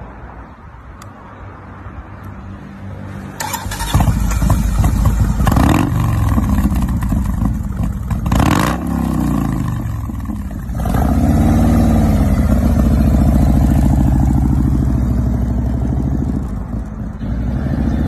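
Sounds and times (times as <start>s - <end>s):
motorcycle engine idling and revving: 3.1s - 18.0s
motorcycle starter cranking: 3.4s - 5.6s.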